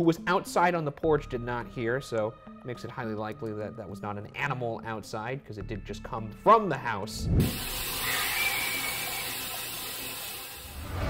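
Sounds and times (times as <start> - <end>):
static hiss: 7.3 - 10.8
faint high-pitched scream: 8.0 - 9.6.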